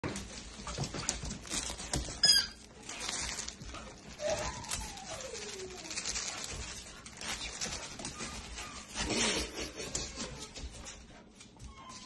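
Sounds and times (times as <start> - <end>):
squeaky toy squeak: 2.2 - 2.6.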